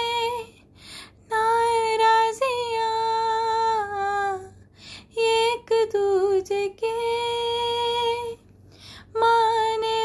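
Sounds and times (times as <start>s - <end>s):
woman singing unaccompanied: 0.0s - 0.6s, 1.2s - 8.4s, 9.1s - 10.0s.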